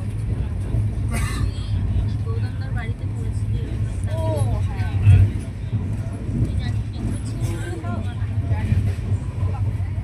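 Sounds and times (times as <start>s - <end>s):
faint voices talking: 0.0s - 10.0s
train coach rumbling: 0.0s - 10.0s.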